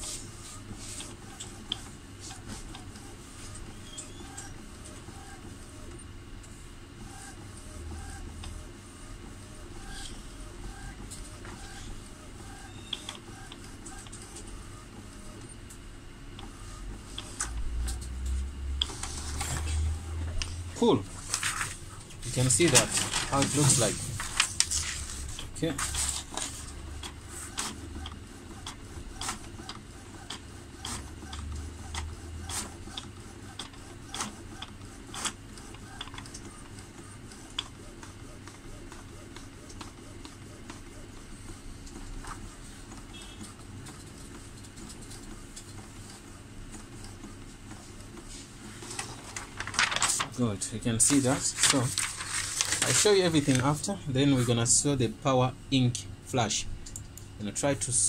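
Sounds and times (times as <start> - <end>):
faint printer tones: 0.0 - 58.0
inkjet printer humming: 0.0 - 58.0
light printer clicks: 12.5 - 14.3.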